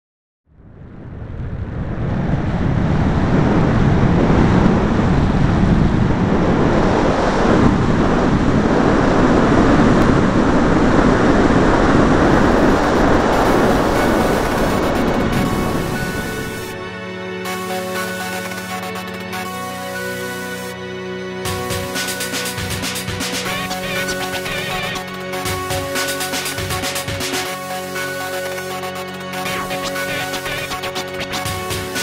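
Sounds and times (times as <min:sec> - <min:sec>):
loud steady rushing noise: 0:00.8 - 0:20.8, 0:21.4 - 0:32.0
musical tones: 0:12.2 - 0:32.0.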